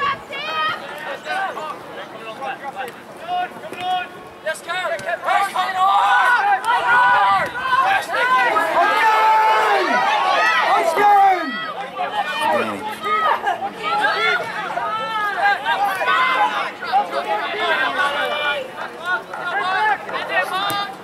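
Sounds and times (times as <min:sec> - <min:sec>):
people shouting: 0:03.2 - 0:21.0.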